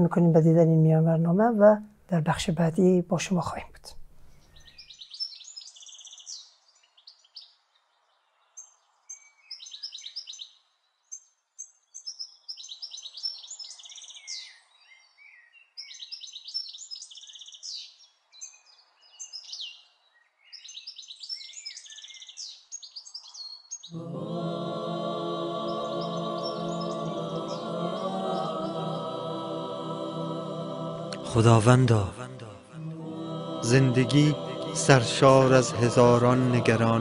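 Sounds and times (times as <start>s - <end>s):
faint background noise: 0.0s - 4.8s
songbirds chirping and trilling: 0.0s - 37.0s.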